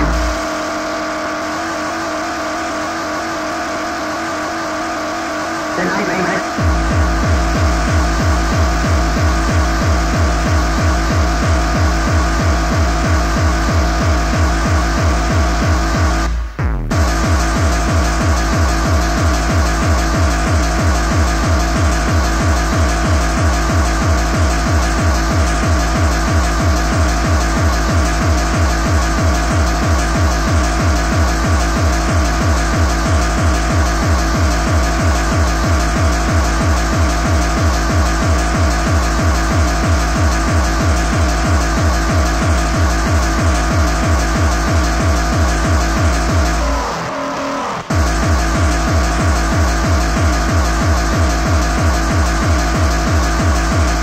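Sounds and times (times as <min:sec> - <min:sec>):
fast kick drum: 0:00.0 - 0:00.7, 0:05.8 - 0:47.1, 0:47.9 - 0:54.0
dense synth layer: 0:00.0 - 0:54.0.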